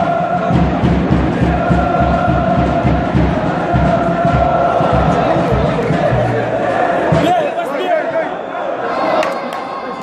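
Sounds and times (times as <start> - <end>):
drum beating steadily: 0.0 - 7.6
crowd chanting in unison: 0.0 - 10.0.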